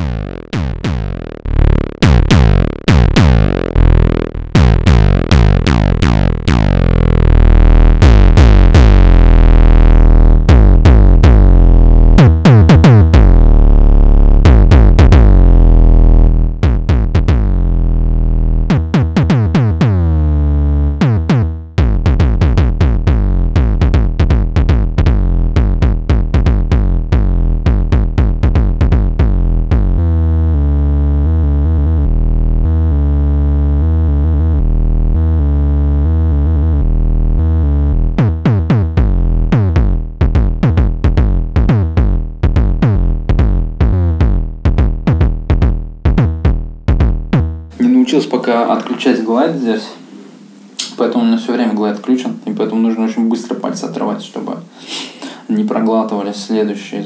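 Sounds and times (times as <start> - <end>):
synth kick hits with falling pitch: 0.0 - 20.4
synthesizer deep bass notes: 0.0 - 47.9.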